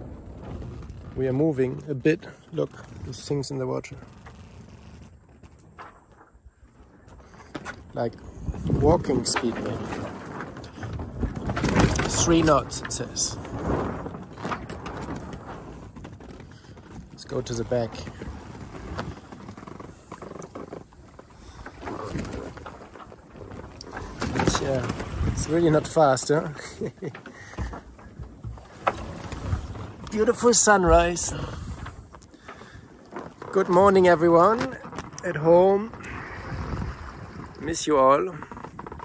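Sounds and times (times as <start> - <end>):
boat knocks and creaks: 0.0 - 39.0
sail and rig shaking: 0.0 - 39.0.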